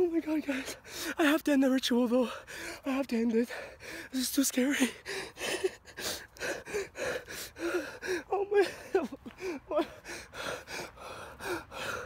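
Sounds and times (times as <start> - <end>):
man gasping breaths: 4.8 - 8.3, 9.3 - 12.0.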